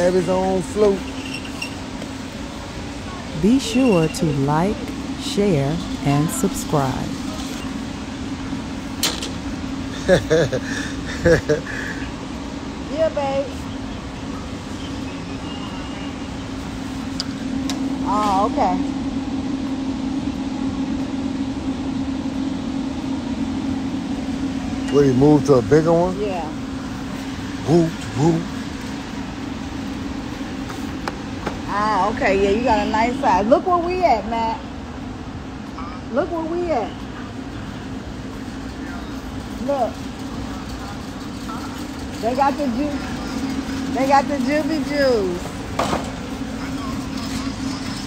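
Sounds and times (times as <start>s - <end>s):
steady hum: 0.0s - 48.0s
shopping cart rolling on concrete: 3.3s - 7.8s, 38.6s - 48.0s
faint voices: 35.9s - 48.0s.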